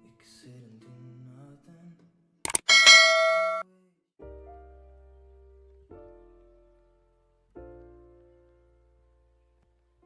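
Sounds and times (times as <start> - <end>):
quick clicks: 2.5 - 2.8
bright bell ding: 2.6 - 3.6.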